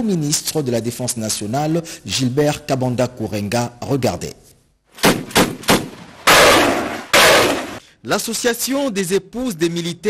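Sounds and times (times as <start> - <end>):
heavy machine gun bursts: 5.4 - 7.8.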